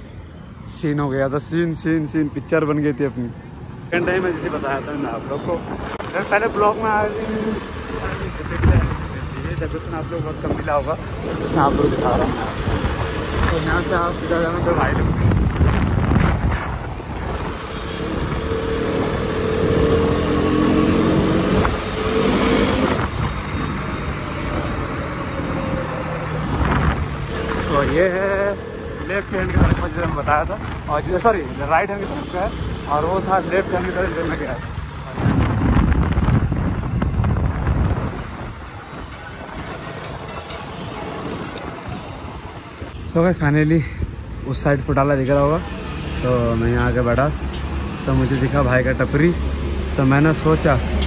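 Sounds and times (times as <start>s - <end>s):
road traffic noise: 0.0s - 51.0s
wind on microphone: 7.4s - 31.2s, 34.0s - 43.1s.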